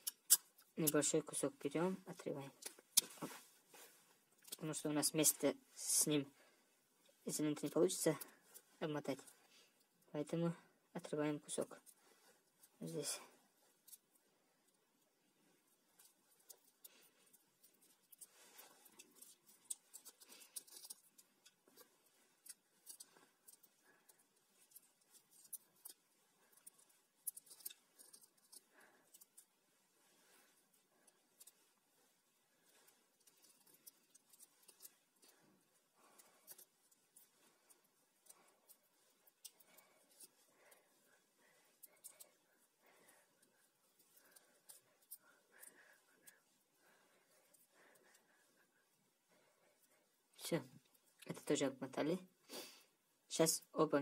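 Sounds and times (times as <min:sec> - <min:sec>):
electrical tape crackling: 0:15.9 - 0:47.0.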